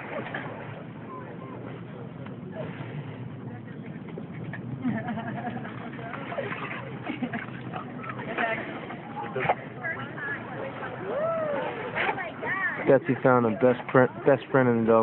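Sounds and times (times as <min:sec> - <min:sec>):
distant voices: 0:00.0 - 0:15.0.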